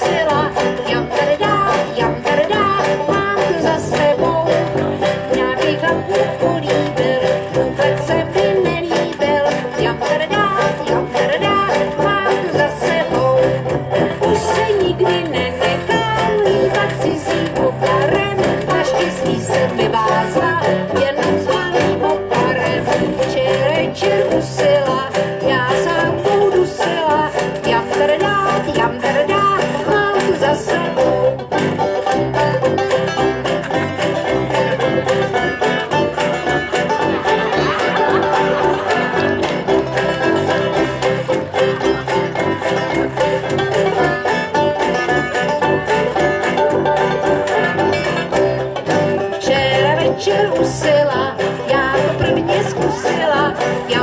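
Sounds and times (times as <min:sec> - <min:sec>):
person singing: 0:00.0 - 0:48.2, 0:49.0 - 0:54.0
sousaphone bass line: 0:00.0 - 0:54.0
strummed banjos: 0:00.0 - 0:54.0.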